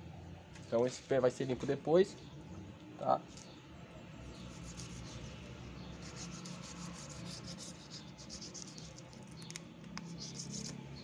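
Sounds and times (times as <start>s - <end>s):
knife rasping through skin and tendon: 6.0s - 10.8s.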